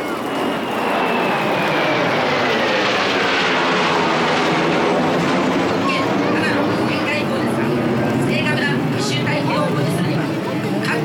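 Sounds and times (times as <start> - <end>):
jet aircraft roar and whine: 0.0 - 11.0.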